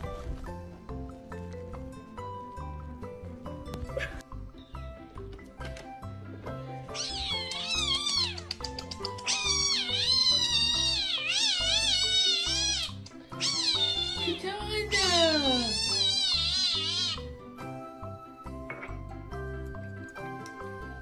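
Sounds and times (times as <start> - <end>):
background music: 0.0 - 21.0
cat crying: 6.9 - 8.6, 9.2 - 17.4.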